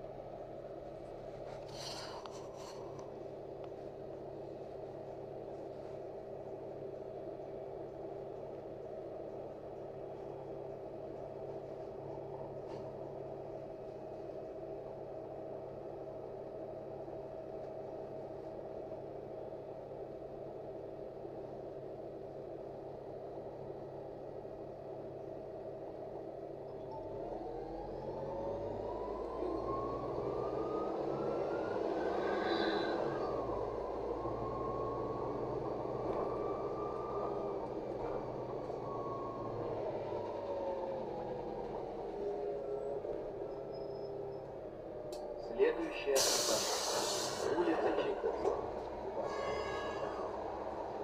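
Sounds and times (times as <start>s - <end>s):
bus drivetrain whine: 0.0s - 51.0s
bus engine idling: 0.0s - 51.0s.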